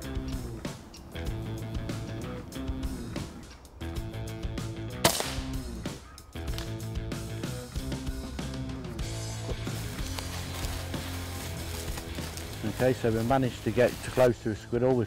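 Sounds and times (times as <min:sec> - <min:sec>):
background music: 0:00.0 - 0:15.0
air rifle shot: 0:05.0 - 0:05.9.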